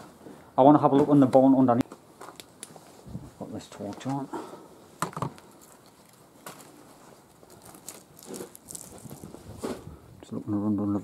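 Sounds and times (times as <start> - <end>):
footsteps crunching on debris: 5.2 - 9.9.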